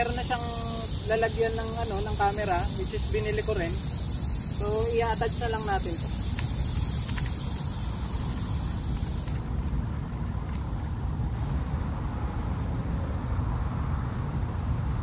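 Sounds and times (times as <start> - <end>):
high insect buzz: 0.0 - 12.0.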